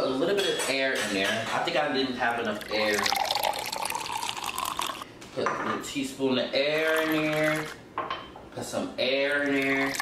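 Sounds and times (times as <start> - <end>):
liquid pouring into a container: 2.4 - 5.0, 9.6 - 10.0.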